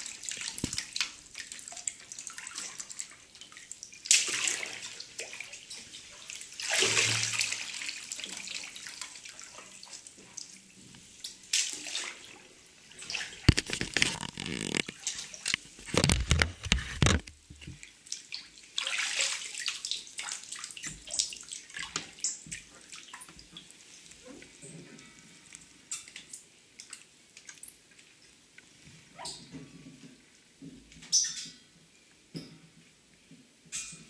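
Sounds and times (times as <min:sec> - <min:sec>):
water dripping: 0:00.0 - 0:16.4, 0:17.3 - 0:24.2, 0:25.2 - 0:29.4
bathwater sloshing and splashing: 0:00.0 - 0:24.6.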